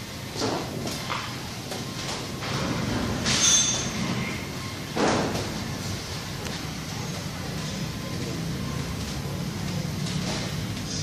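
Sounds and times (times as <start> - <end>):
steady background din: 0.0 - 11.0.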